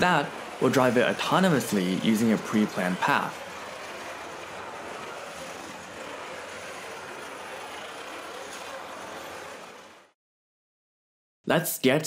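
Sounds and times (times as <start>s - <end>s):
robot drive motors whirring: 0.0s - 10.1s.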